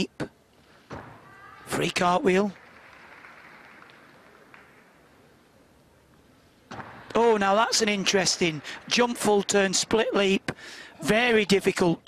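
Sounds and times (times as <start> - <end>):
low hum of large hall: 0.0 - 12.0.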